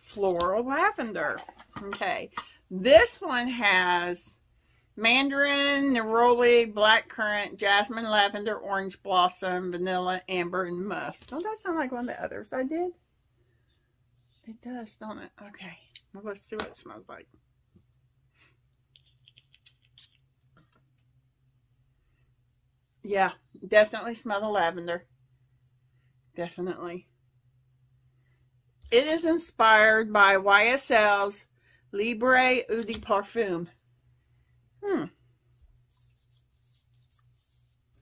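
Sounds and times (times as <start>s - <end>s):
hand rubbing skin: 35.6s - 38.0s.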